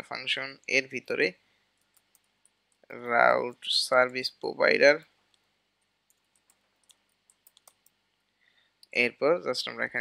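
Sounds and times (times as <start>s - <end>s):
computer keyboard keystrokes: 6.1s - 8.0s.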